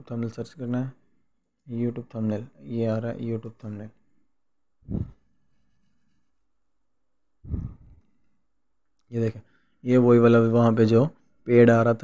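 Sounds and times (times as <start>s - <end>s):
low rumbling burst on microphone: 4.8s - 5.2s, 7.4s - 8.0s.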